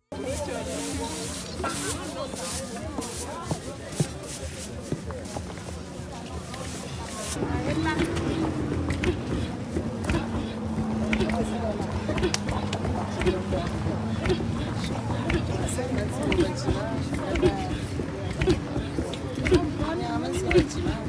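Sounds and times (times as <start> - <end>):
women chattering and laughing: 0.0 - 21.0
scattered knocks: 7.8 - 21.0.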